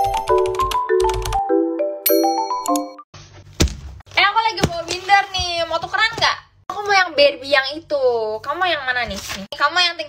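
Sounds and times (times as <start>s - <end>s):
chiming bell-like jingle: 2.0s - 2.7s.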